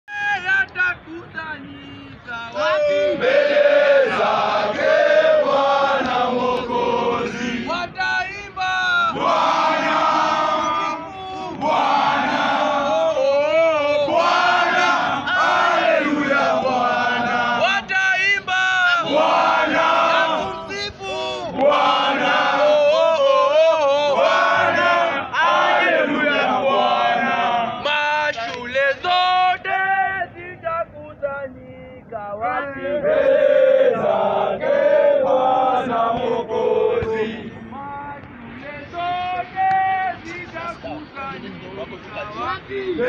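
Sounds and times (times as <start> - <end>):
young men chanting and singing: 0.1 - 43.0.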